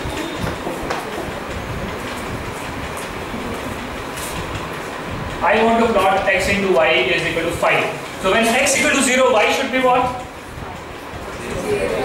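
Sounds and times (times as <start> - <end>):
steady low rumbling: 0.0 - 12.0.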